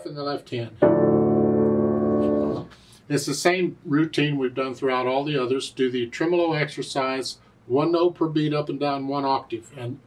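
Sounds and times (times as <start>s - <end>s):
grand piano chord: 0.8s - 2.7s.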